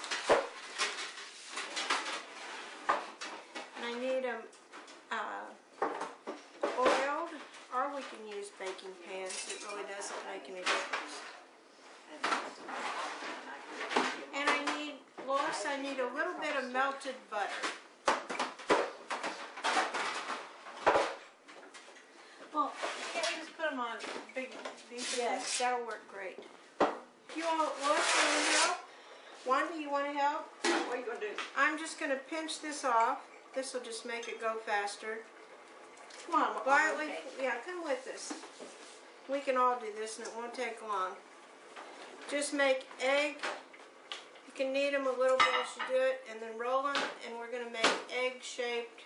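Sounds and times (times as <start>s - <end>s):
dishes and cutlery clinking: 45.3s - 45.9s.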